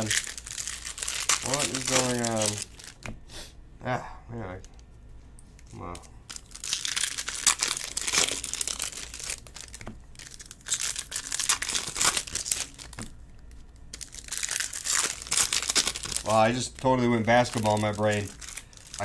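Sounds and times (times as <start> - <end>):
foil wrappers crinkling and tearing: 0.0 - 3.1, 5.9 - 19.0.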